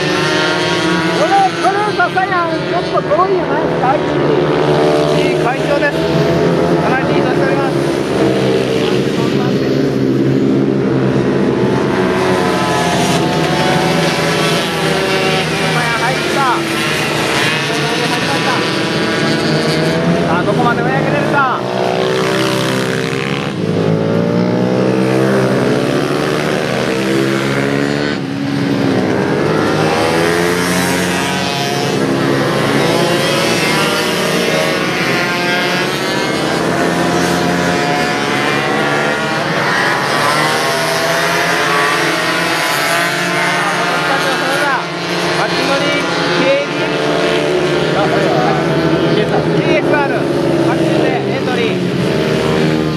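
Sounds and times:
racing motorcycles revving: 0.0 - 52.9.

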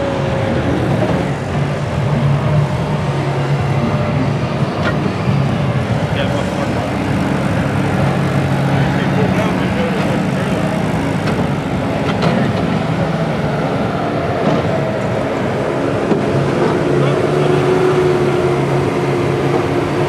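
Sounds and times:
front loader engine running: 0.0 - 20.0.

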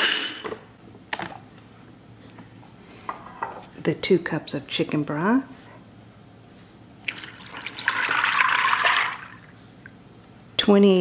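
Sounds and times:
broth pouring and splashing: 7.0 - 9.5.

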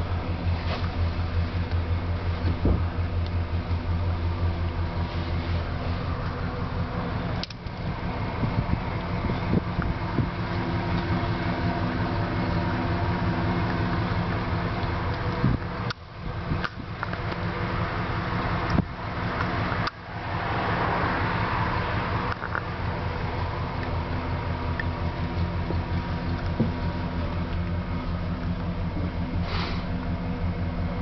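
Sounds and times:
van engine hum inside cabin: 0.0 - 31.0.

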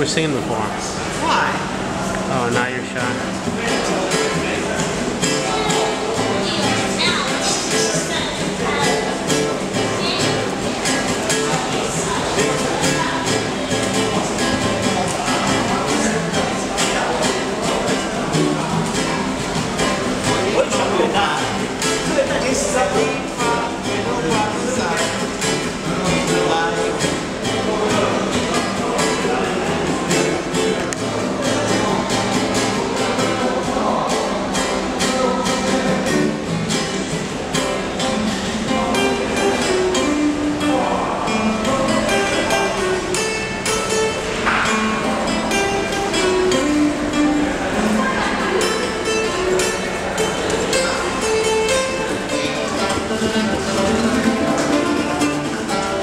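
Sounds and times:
classical guitar plucked: 0.0 - 56.0.

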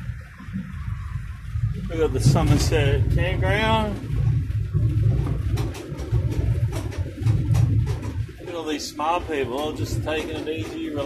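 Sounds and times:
car engine and road rumble: 0.0 - 11.0
light knocks and rattles: 2.0 - 11.0.

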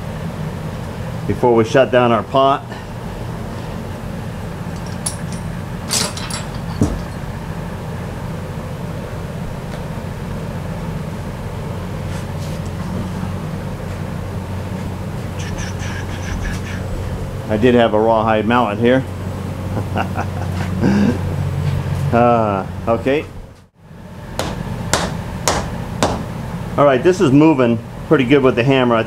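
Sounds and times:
low mechanical hum: 0.0 - 29.0
metal parts clinking: 4.7 - 7.3.

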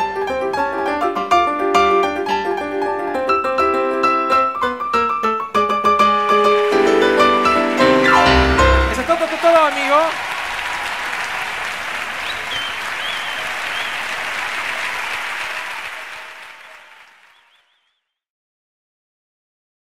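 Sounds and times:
audience applauding and cheering: 6.4 - 17.9
whistles: 7.8 - 18.2.

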